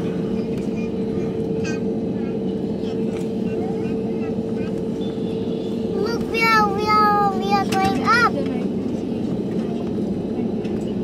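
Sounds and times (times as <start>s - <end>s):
jet engine hum in cabin: 0.0s - 11.0s
faint voices: 0.2s - 5.0s.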